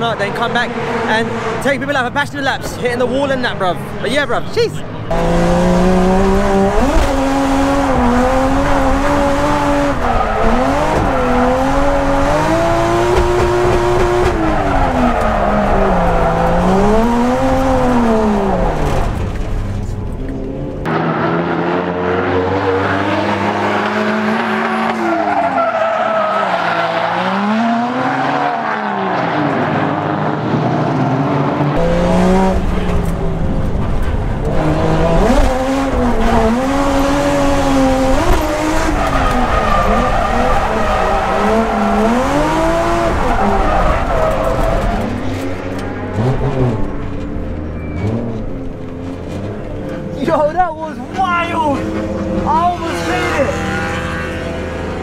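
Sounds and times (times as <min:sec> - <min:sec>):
car engine revving: 0:00.0 - 0:55.0
tyre squeal: 0:47.6 - 0:48.4.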